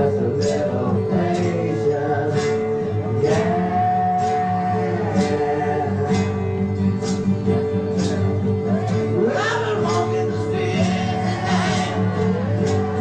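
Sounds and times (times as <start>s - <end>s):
man singing: 0.0s - 13.0s
strummed acoustic guitars: 0.0s - 13.0s.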